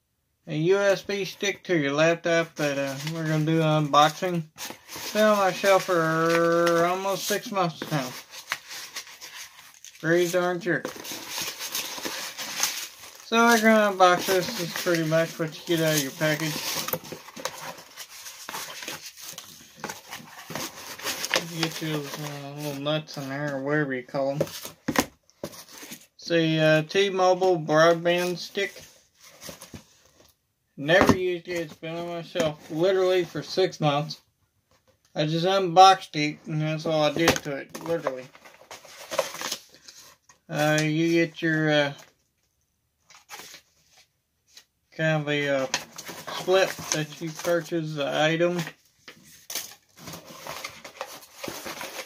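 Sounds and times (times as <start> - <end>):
paper and cardboard rustling: 2.5 - 23.6, 24.3 - 26.1, 27.4 - 30.3, 36.9 - 41.5, 43.1 - 44.7, 45.6 - 52.0.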